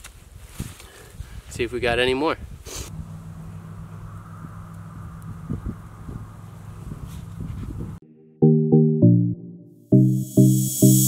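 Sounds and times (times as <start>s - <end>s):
steady low hum: 2.9s - 8.0s.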